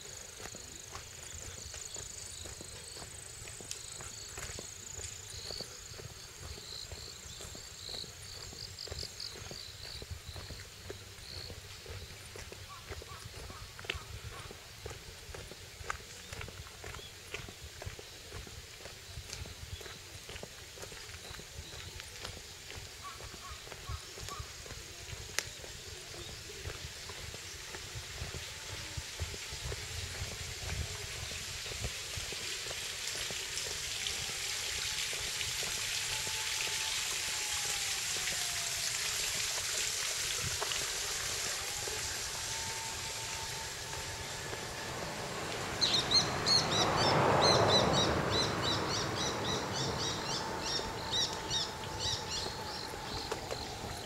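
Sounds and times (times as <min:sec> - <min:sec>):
rustle: 0:00.0 - 0:54.0
steady woodland hiss: 0:00.0 - 0:54.0.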